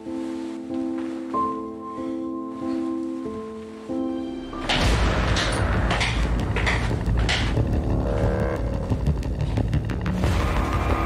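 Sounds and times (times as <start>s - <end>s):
low bass drone: 4.7s - 11.0s.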